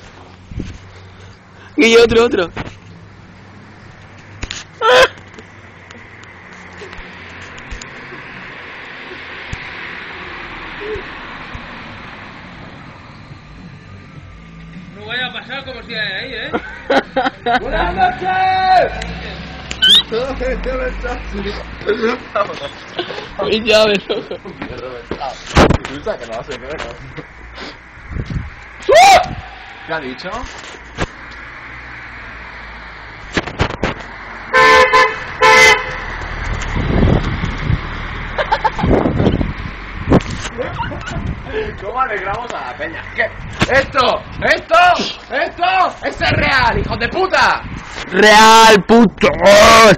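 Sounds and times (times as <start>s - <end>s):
car passing: 0.0s - 49.9s
car horn blasts: 34.5s - 36.1s.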